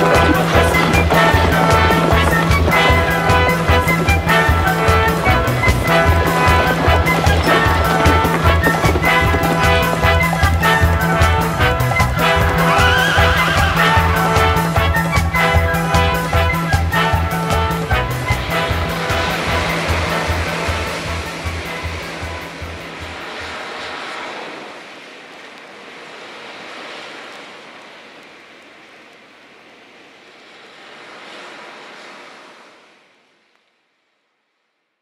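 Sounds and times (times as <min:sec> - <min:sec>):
band music with beat: 0:00.0 - 0:22.5
ocean surf waves washing: 0:00.0 - 0:33.9.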